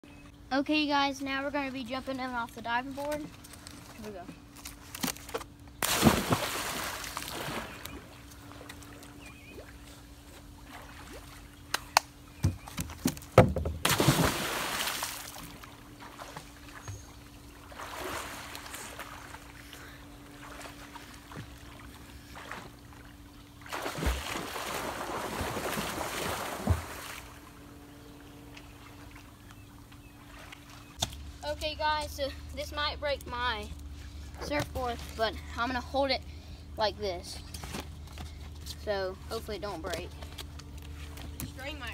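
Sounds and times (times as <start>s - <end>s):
steady low hum: 0.0s - 41.9s
people splashing into pool: 5.8s - 7.9s, 13.8s - 15.6s, 23.7s - 27.3s
water sloshing: 5.8s - 11.7s, 12.6s - 31.1s.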